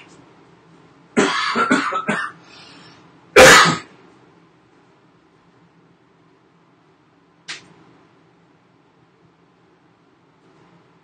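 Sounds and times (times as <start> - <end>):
man clearing throat: 1.2 - 2.4, 3.4 - 3.9
man coughing: 1.2 - 2.4, 3.4 - 3.9.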